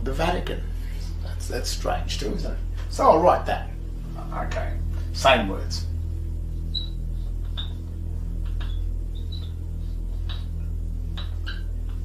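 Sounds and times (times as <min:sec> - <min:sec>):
low electrical hum: 0:00.0 - 0:12.0
writing squeaks: 0:06.7 - 0:10.6, 0:11.2 - 0:11.7.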